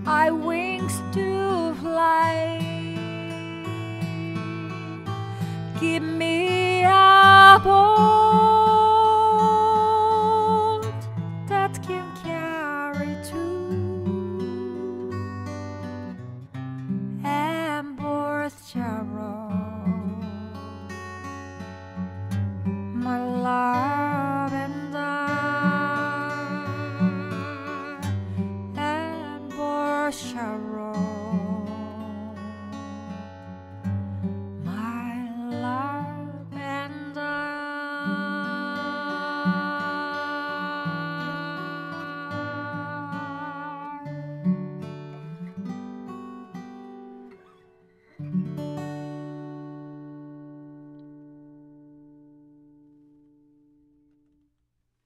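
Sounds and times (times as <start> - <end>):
woman singing: 0.0 - 15.7, 17.1 - 20.9, 22.8 - 33.4, 34.6 - 44.4
acoustic guitar: 0.0 - 55.0.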